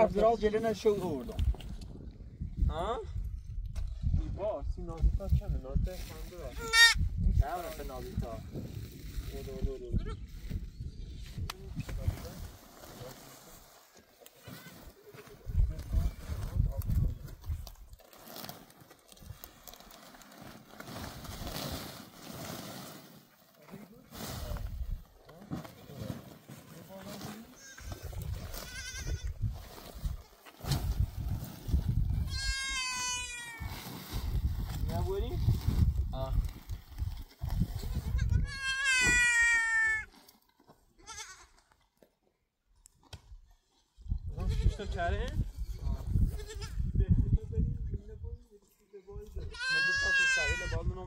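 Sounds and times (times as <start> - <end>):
goat bleating: 6.6 - 7.0, 27.6 - 29.4, 32.3 - 33.7, 37.8 - 40.1, 41.0 - 41.6, 46.3 - 46.8, 49.5 - 50.7.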